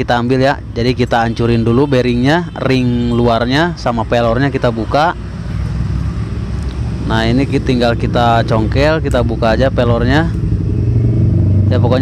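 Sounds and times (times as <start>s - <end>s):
engine rumble: 0.0s - 12.0s.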